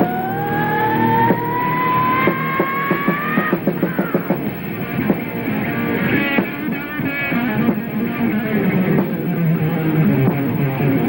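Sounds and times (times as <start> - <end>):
singer screaming high: 0.0 - 4.3
rock band playing: 0.0 - 11.0.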